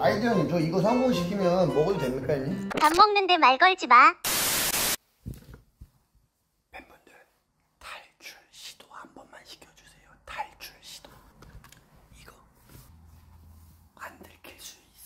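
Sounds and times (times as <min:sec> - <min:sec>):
burst of static hiss: 0:04.2 - 0:05.0
faint whispering: 0:06.7 - 0:11.3, 0:12.0 - 0:12.7, 0:13.9 - 0:15.0.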